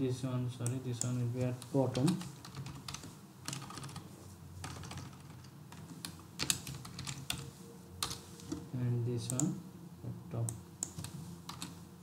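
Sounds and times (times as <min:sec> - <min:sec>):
typing on computer keyboard: 0:01.9 - 0:04.0, 0:04.6 - 0:08.6, 0:10.8 - 0:11.8.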